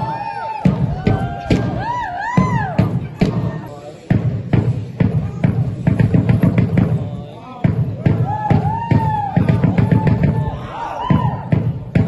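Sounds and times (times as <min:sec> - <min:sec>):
dance music with drum beat: 0:00.0 - 0:12.0.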